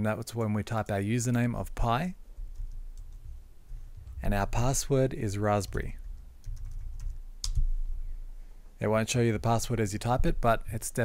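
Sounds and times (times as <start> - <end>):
low background hum: 0.0 - 11.0
keyboard keystrokes: 6.4 - 7.7.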